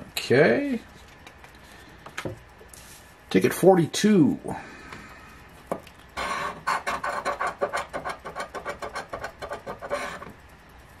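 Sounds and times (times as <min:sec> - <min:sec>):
coin scratching lottery ticket: 0:06.2 - 0:10.4.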